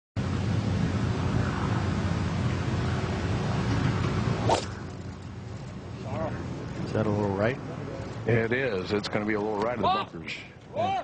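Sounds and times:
outdoor background hiss: 0:00.2 - 0:11.0
golf club striking ball: 0:04.0 - 0:05.0.

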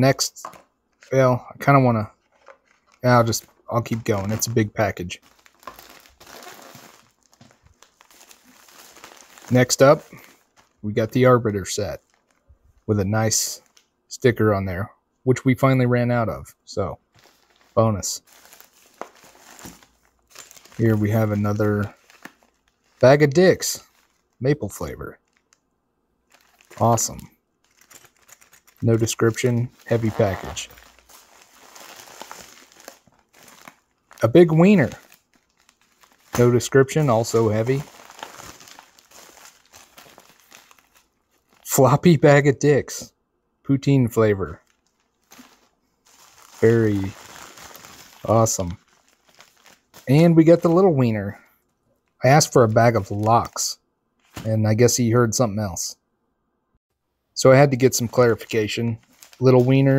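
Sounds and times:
plastic mailers rustling: 0:00.3 - 0:13.9, 0:17.0 - 0:25.6, 0:26.2 - 0:42.1, 0:44.3 - 0:51.2, 0:57.5 - 0:59.9
padded envelope crinkling: 0:02.2 - 0:10.8, 0:12.0 - 0:12.5, 0:17.1 - 0:25.6, 0:26.2 - 0:41.7, 0:44.6 - 0:51.1, 0:57.9 - 0:59.9.

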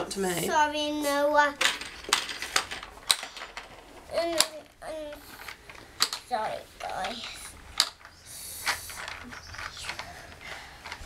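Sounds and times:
plastic toy clicking and rattling: 0:01.4 - 0:11.0.

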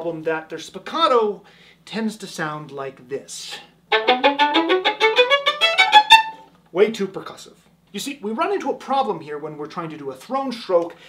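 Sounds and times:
violin spiccato notes: 0:03.9 - 0:06.4.

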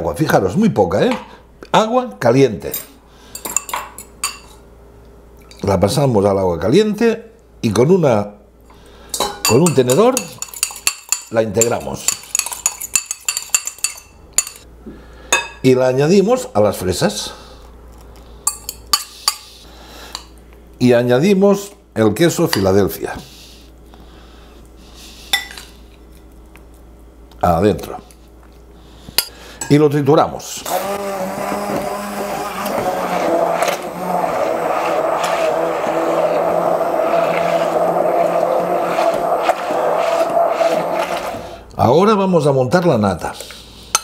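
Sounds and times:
stick blender motor humming: 0:30.6 - 0:41.7.

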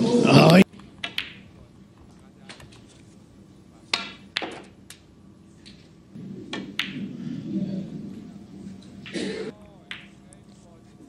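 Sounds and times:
snooker balls clicking: 0:00.4 - 0:02.9, 0:03.9 - 0:05.9, 0:06.5 - 0:07.1, 0:08.7 - 0:10.6
cue tip striking ball: 0:04.0 - 0:04.7, 0:06.2 - 0:07.4.

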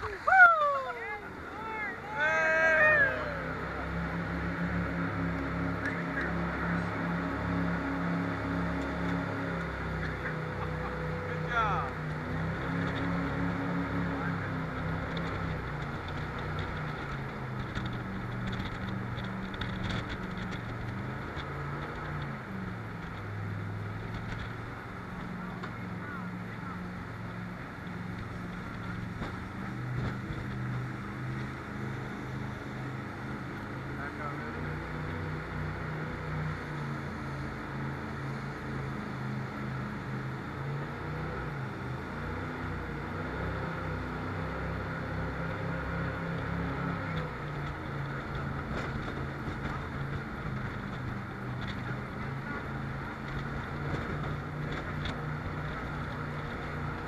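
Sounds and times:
jet boat engine running hard: 0:00.0 - 0:57.0
rushing water: 0:00.0 - 0:57.0
wind: 0:00.0 - 0:57.0.

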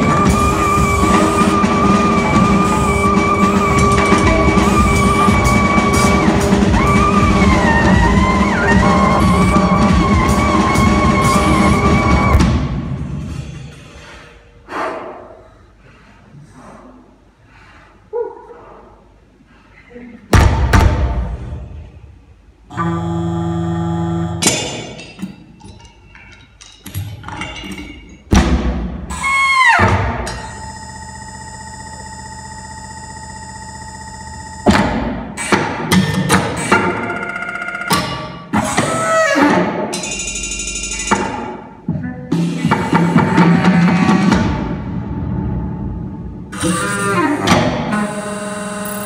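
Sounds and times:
saxophone percussion and electronics: 0:00.0 - 0:12.6, 0:22.7 - 0:24.6, 0:29.1 - 0:44.8, 0:46.5 - 0:49.0.

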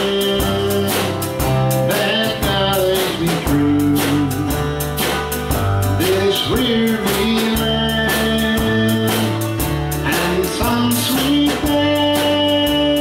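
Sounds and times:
electric bass: 0:00.0 - 0:13.0
sliding melody line: 0:00.0 - 0:13.0
steady beat: 0:00.0 - 0:13.0
strummed acoustic guitar: 0:00.0 - 0:13.0.

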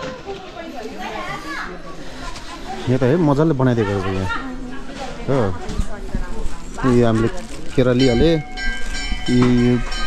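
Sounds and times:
background voices talking: 0:00.0 - 0:10.0.

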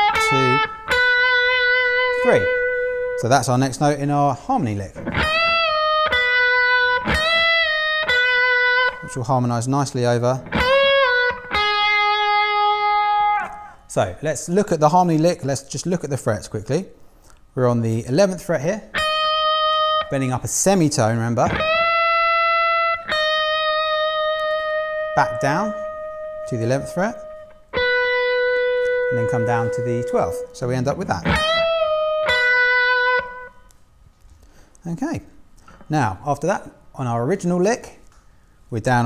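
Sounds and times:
electric guitar picked notes: 0:00.0 - 0:03.7, 0:05.0 - 0:09.5, 0:10.1 - 0:13.8, 0:18.9 - 0:20.5, 0:21.4 - 0:33.7.

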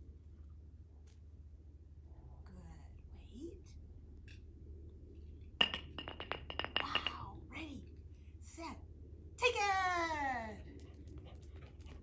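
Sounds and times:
hard object clinking on brick: 0:05.6 - 0:07.2.

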